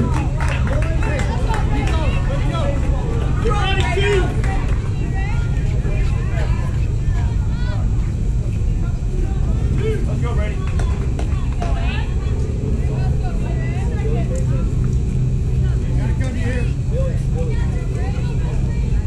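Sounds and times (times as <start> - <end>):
people chattering and calling out: 0.0 - 19.0
steady low rumble: 0.0 - 19.0.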